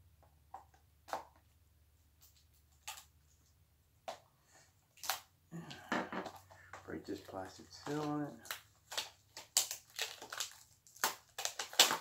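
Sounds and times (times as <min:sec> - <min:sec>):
plastic wrap crackling: 0:04.9 - 0:12.0.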